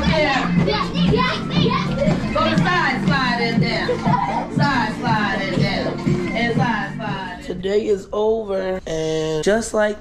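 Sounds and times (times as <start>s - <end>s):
children talking and shouting: 0.0s - 6.3s
music with low bass: 0.0s - 7.6s.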